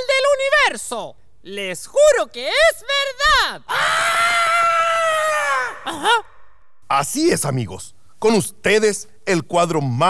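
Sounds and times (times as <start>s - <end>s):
puppet voice shouting and yelling: 1.7s - 6.1s.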